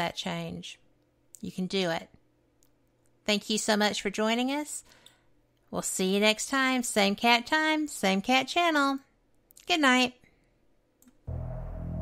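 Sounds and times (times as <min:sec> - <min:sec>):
low synthesizer music: 0:11.2 - 0:12.0.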